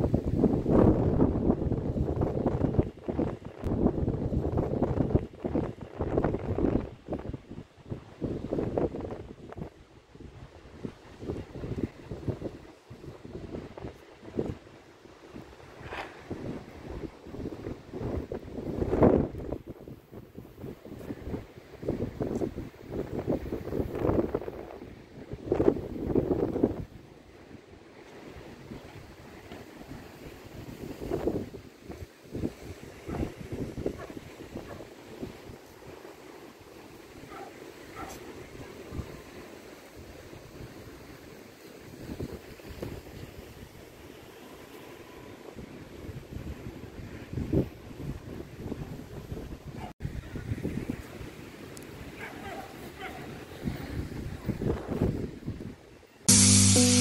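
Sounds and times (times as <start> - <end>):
wind buffeting microphone: 0.0 - 44.3, 45.0 - 56.0
small waves breaking on sand: 24.8 - 49.4.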